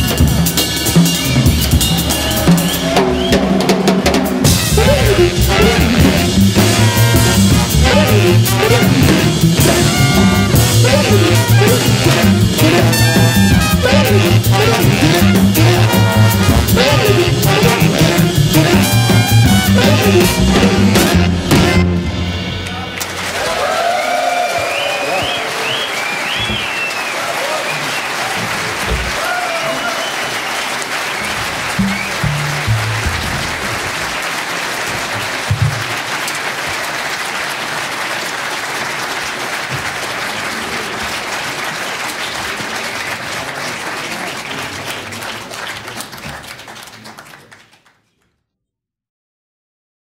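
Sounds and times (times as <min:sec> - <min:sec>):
audience applauding: 0:00.0 - 0:21.2, 0:22.6 - 0:48.3.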